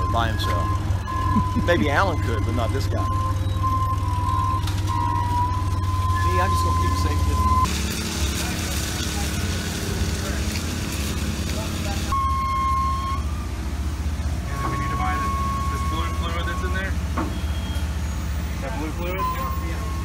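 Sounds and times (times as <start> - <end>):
faint voices: 0.0 - 3.1
high warning tone: 0.0 - 7.7, 14.5 - 20.0
forklift engine running: 0.0 - 20.0.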